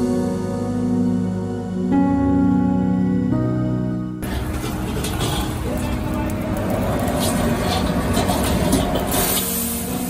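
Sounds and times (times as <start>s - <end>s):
gas wok burner roaring: 4.2s - 10.0s.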